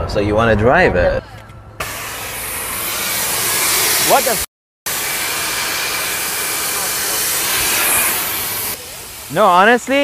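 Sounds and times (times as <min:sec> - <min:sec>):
loud hiss of vapour venting: 0:01.8 - 0:10.0.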